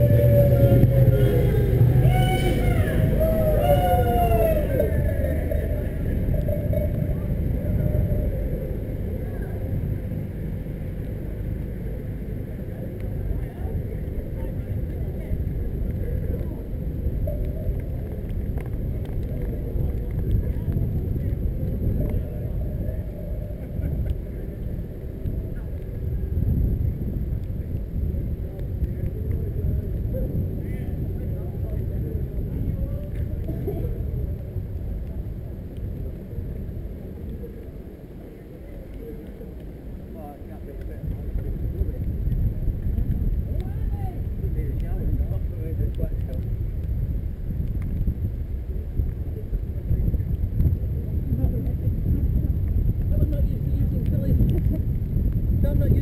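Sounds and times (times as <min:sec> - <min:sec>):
tyre noise on wet road: 0:00.0 - 0:56.0
wind rumble on microphone: 0:00.0 - 0:56.0.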